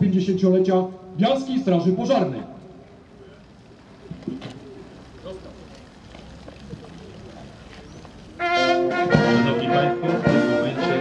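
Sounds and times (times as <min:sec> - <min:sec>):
outdoor background sound: 0:00.2 - 0:09.4
faint low bird calls: 0:03.2 - 0:08.4.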